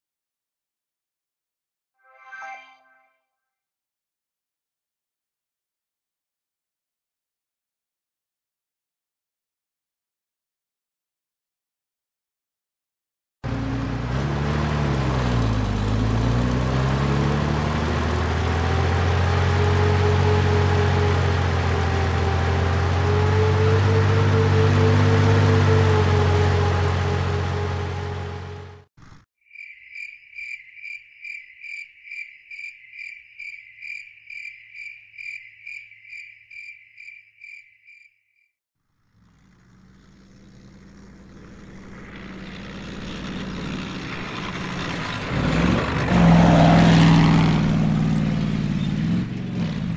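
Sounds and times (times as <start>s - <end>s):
heavy engine droning with whine: 13.5s - 28.9s, 38.9s - 49.9s
cricket chirping: 29.4s - 38.2s.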